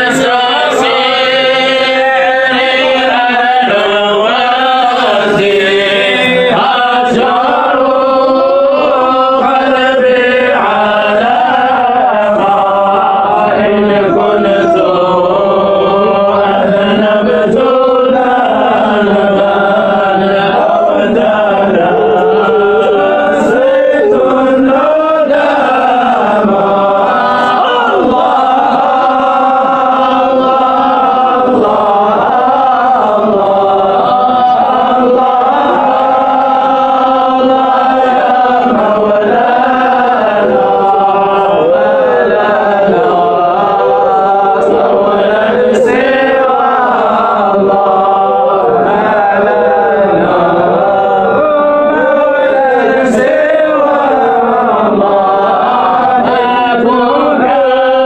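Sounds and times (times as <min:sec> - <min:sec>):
man chanting a hymn: 0:00.0 - 0:58.0.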